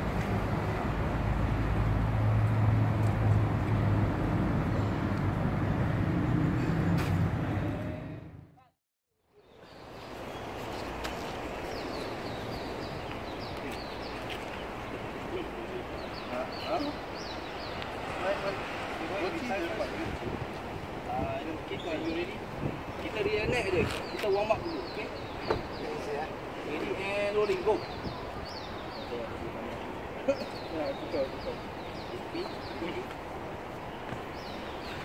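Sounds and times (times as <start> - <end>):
traffic rumble: 0.0 - 8.8, 9.4 - 35.0.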